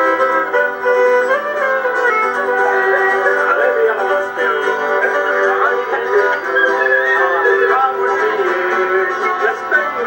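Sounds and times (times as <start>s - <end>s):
acoustic guitar strumming: 0.0s - 10.0s
man singing: 2.4s - 10.0s.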